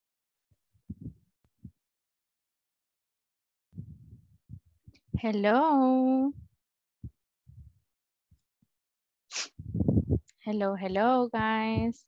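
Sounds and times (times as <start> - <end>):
muffled thumps on headset microphone: 0.9 - 1.7, 3.8 - 5.3, 9.6 - 10.2, 11.4 - 12.0.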